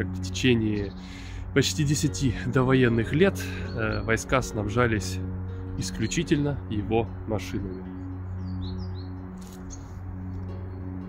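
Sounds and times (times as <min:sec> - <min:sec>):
ambient music with low drone: 0:00.0 - 0:11.0
high bird chirps: 0:07.6 - 0:11.0.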